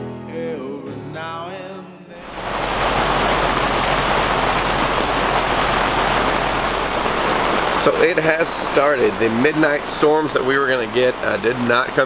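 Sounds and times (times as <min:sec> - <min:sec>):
song with singing: 0:00.3 - 0:02.4
heavy rain on a canvas tent: 0:02.2 - 0:12.0.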